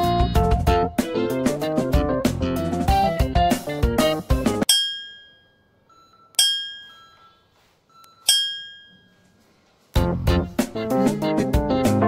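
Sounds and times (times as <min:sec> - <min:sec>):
bell-like chime dings: 0:04.7 - 0:09.4.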